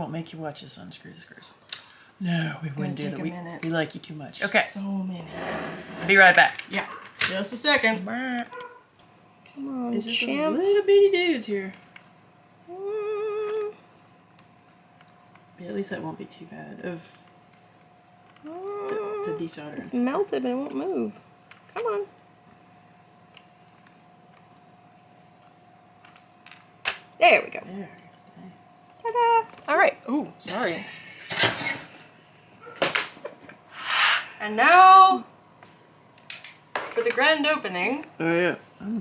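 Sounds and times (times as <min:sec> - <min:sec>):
soldering iron scraping rustle: 0:05.2 - 0:06.4
person humming: 0:12.6 - 0:13.8, 0:18.4 - 0:19.5.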